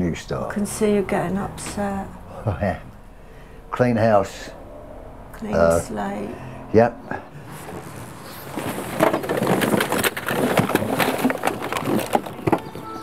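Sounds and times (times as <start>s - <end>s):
papers and objects clattering into skip: 7.6s - 13.0s.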